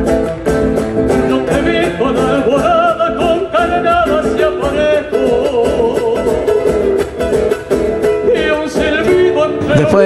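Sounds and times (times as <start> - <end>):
acoustic guitar: 0.0 - 10.0
man singing a folk song: 0.8 - 10.0.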